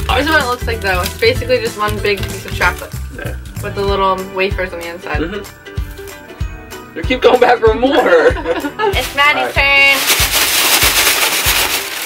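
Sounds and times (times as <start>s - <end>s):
plastic bag crinkling: 0.0s - 3.0s, 8.9s - 12.0s.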